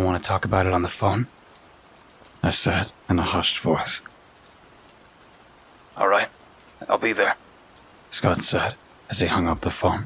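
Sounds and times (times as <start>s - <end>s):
soft rain patter: 0.0s - 10.0s.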